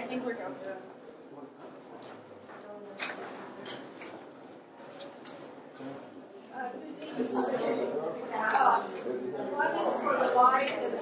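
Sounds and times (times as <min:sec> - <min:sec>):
faint murmur of people: 0:00.0 - 0:11.0.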